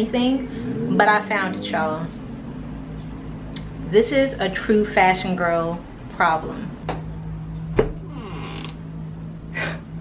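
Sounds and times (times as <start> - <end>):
low steady hum: 0.0 - 10.0
door hinges creaking: 7.8 - 8.8.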